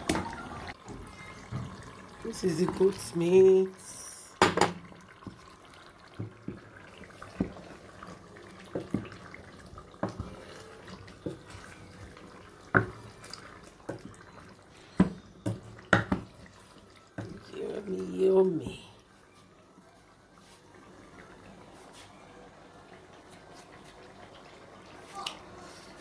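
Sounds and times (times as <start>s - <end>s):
spoon stirring thick stew: 5.1s - 17.9s
spoon knocking against pot: 15.0s - 16.3s.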